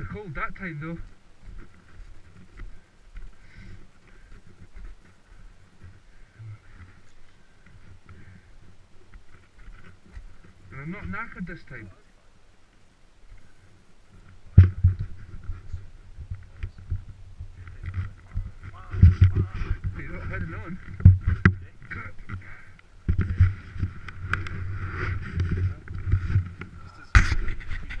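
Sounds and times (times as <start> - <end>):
muffled voices: 15.3 - 23.6.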